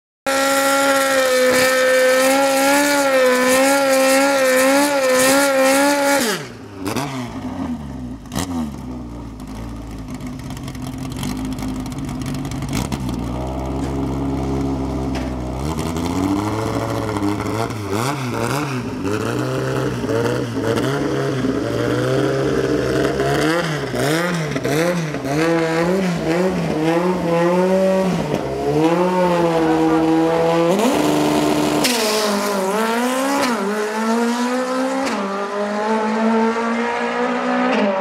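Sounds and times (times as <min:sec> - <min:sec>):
car engine revving: 0:00.3 - 0:38.0.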